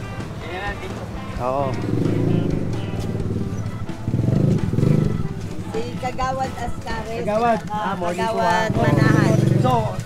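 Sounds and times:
motorbike engine growling: 0:01.0 - 0:10.0.

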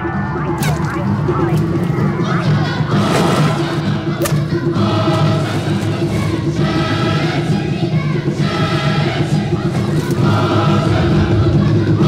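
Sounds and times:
choir singing long chords: 0:01.3 - 0:12.0.

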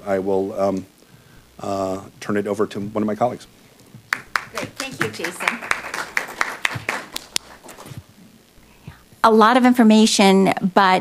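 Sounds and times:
audience applauding: 0:04.1 - 0:08.0.

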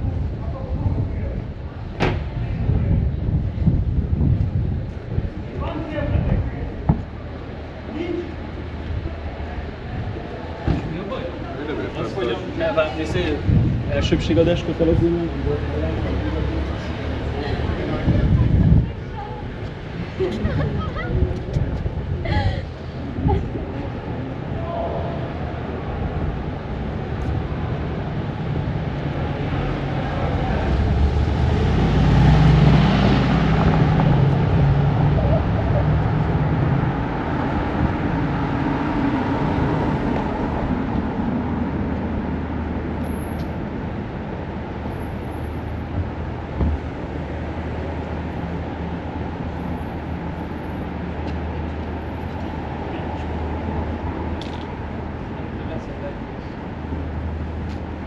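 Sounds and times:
street traffic rumble: 0:00.0 - 0:58.0
vehicle passing close: 0:27.4 - 0:42.8.

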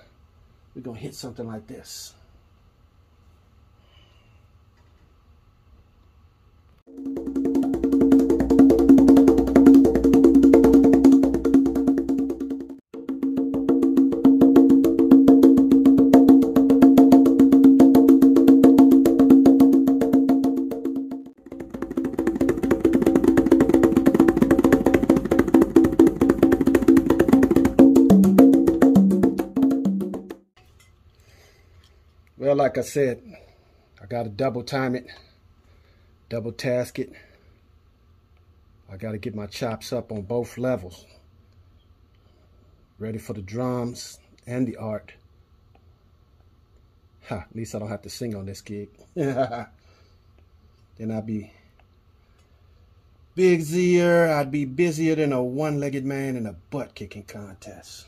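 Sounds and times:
conga drums played by hand: 0:06.9 - 0:30.6.

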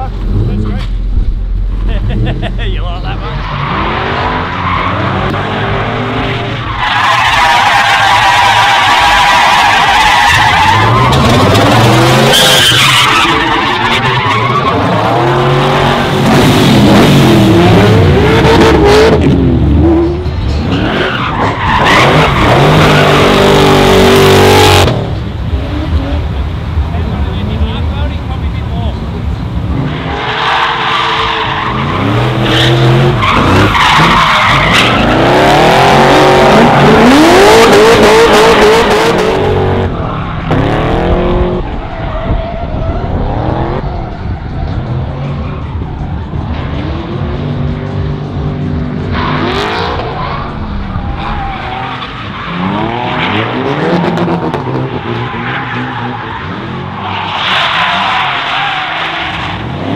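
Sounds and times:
tyres squealing and skidding: 0:03.0 - 0:19.2, 0:19.8 - 0:24.8, 0:29.7 - 0:47.4, 0:49.0 - 0:59.9
car engine revving hard: 0:31.7 - 0:41.7.

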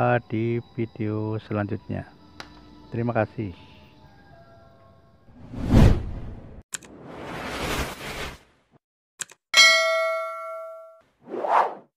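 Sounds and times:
notification bell ding: 0:09.6 - 0:11.0.

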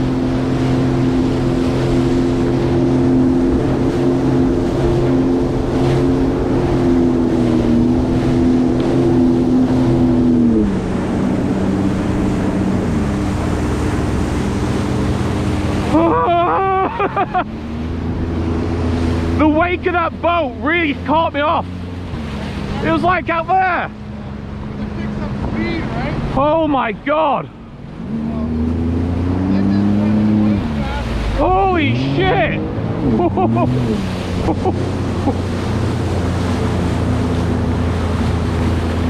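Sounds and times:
water rushing under hull: 0:00.0 - 0:39.0
watercraft engine running: 0:00.0 - 0:39.0.

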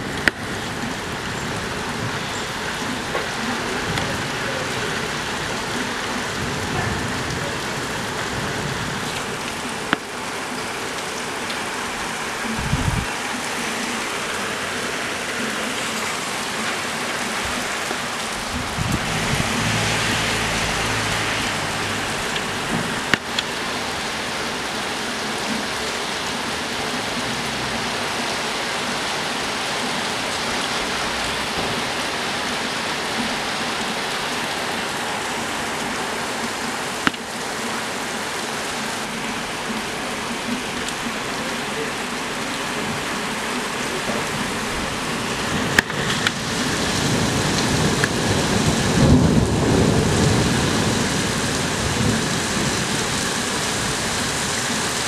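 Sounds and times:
rain on roof tiles and street: 0:00.0 - 0:55.0.

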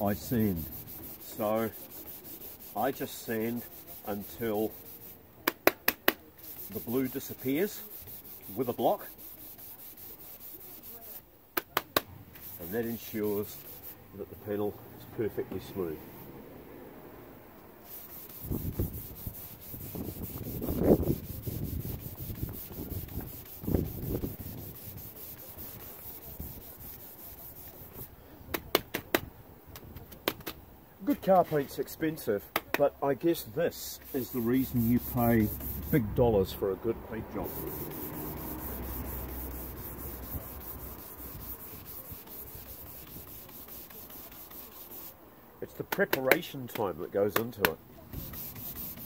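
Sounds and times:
sanding block rubbing metal panel: 0:00.0 - 0:05.2, 0:06.0 - 0:11.2, 0:12.4 - 0:14.0, 0:17.8 - 0:28.1, 0:33.3 - 0:45.2, 0:47.3 - 0:49.0.

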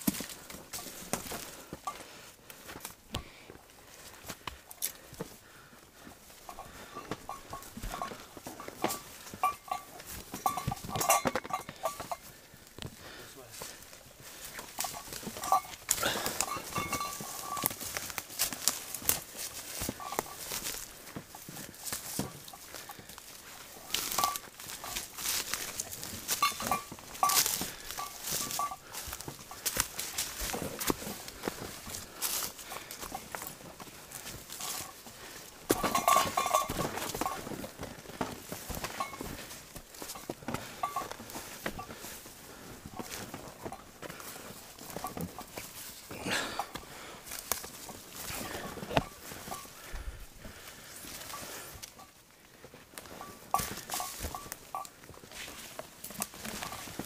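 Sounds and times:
footsteps on trail: 0:00.0 - 0:57.0
rustling ferns and brush: 0:00.0 - 0:57.0.

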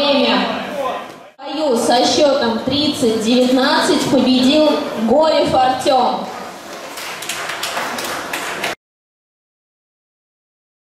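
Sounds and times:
large hall background noise: 0:00.0 - 0:08.8.

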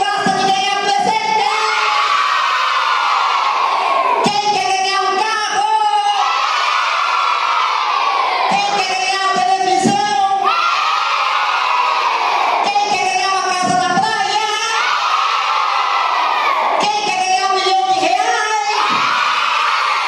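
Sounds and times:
children shouting and cheering: 0:00.2 - 0:20.0
children screaming: 0:01.4 - 0:04.3, 0:06.1 - 0:08.6, 0:14.3 - 0:16.9, 0:18.1 - 0:20.0.

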